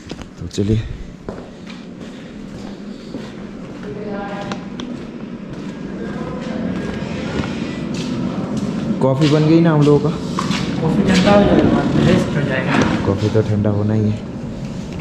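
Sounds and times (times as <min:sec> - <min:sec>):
footsteps on concrete floor: 0:01.0 - 0:11.8
people talking indistinctly: 0:05.6 - 0:14.4.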